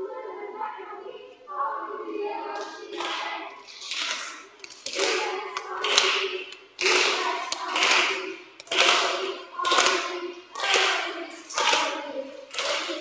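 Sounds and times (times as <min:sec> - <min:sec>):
children singing: 0:00.0 - 0:13.0
children clapping: 0:02.6 - 0:13.0.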